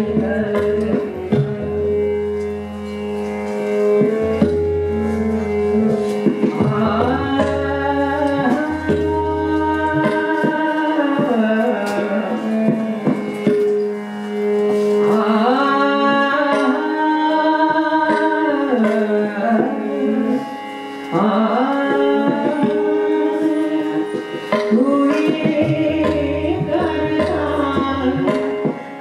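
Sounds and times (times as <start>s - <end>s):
harmonium: 0.0s - 29.0s
tabla strokes: 0.0s - 29.0s
woman singing classical vocal: 6.7s - 12.6s, 15.1s - 20.5s, 21.1s - 28.6s.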